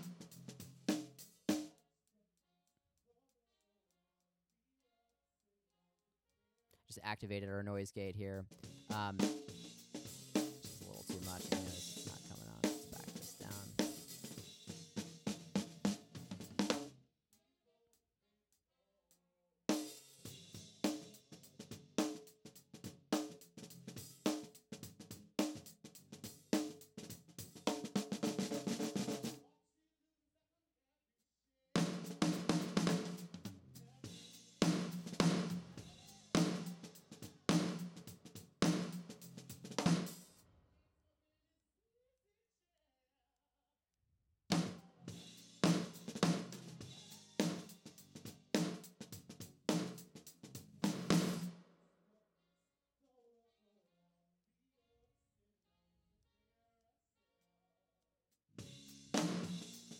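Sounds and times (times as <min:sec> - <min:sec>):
snare drum strokes: 0:08.5 - 0:16.9, 0:26.6 - 0:29.4, 0:31.8 - 0:33.4, 0:34.1 - 0:40.3, 0:44.5 - 0:51.6, 0:58.6 - 0:59.9.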